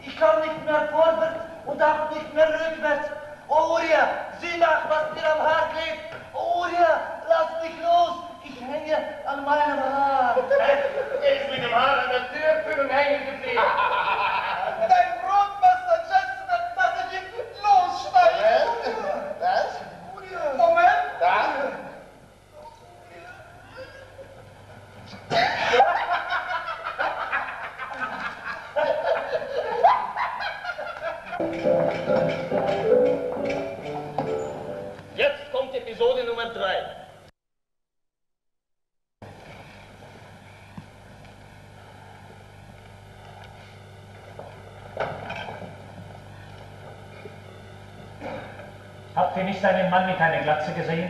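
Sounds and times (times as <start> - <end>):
man speaking loudly: 0.0 - 13.7, 14.8 - 22.0
constant hum: 0.0 - 37.3, 39.2 - 51.0
rapid laughter: 13.6 - 14.9, 25.3 - 31.5.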